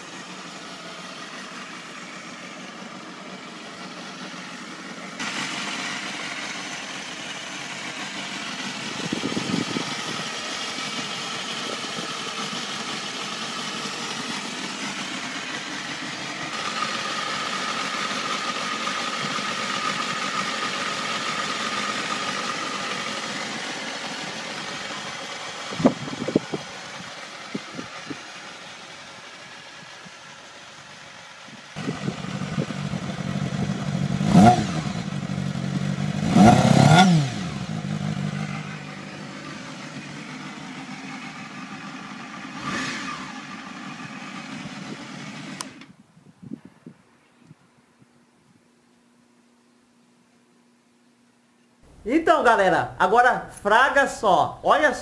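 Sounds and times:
motorcycle engine idling: 0.0s - 46.0s
motorcycle engine revving: 0.0s - 46.0s.

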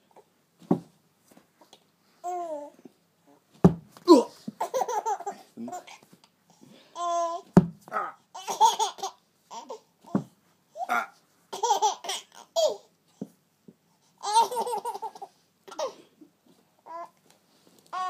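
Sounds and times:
baby laughing: 4.6s - 5.9s, 8.4s - 9.8s, 10.8s - 12.8s, 14.2s - 16.0s.

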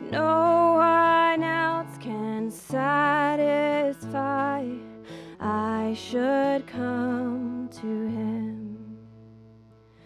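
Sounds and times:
woman singing worship song: 0.0s - 9.2s
acoustic guitar: 0.0s - 10.0s
intake of breath: 5.0s - 5.4s.

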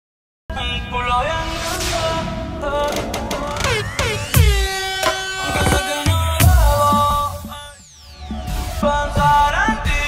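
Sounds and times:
electronic music: 3.3s - 10.0s.

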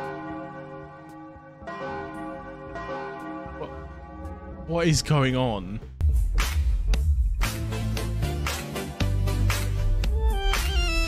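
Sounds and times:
bells ringing in a peal: 0.0s - 4.4s.

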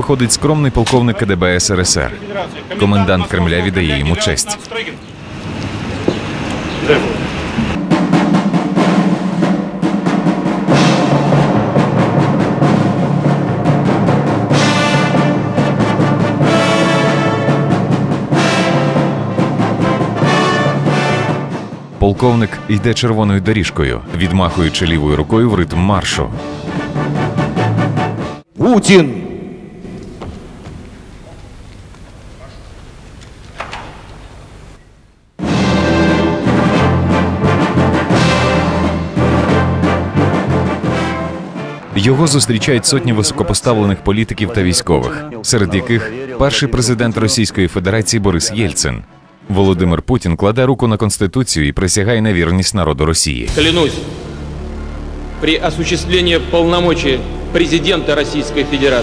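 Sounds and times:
steady drumbeat: 6.9s - 28.2s, 53.4s - 59.0s
military brass band march: 7.6s - 23.0s, 26.4s - 28.5s, 35.4s - 45.2s
fanfare trumpets: 14.2s - 23.1s, 35.4s - 46.3s, 53.5s - 59.0s.

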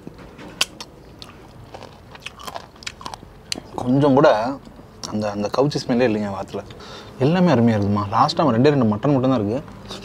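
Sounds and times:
man chewing food: 0.5s - 3.9s.

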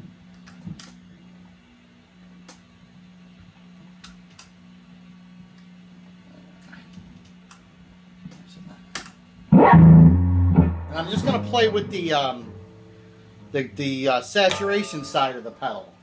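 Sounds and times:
guitar amp hum: 9.3s - 16.0s.

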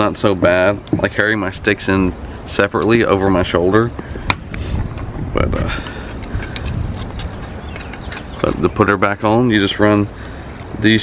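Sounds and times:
steady low rumble: 0.0s - 11.0s
buckles clicking: 3.8s - 8.9s.

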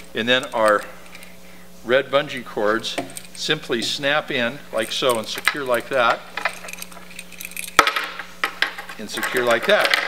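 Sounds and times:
metal hardware clinking: 0.0s - 1.3s, 2.8s - 4.0s, 4.8s - 10.0s.

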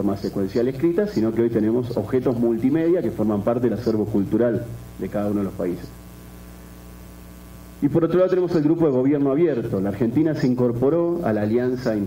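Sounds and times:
man speaking: 0.0s - 6.0s, 7.8s - 12.0s
electrical mains hum: 0.0s - 12.0s.

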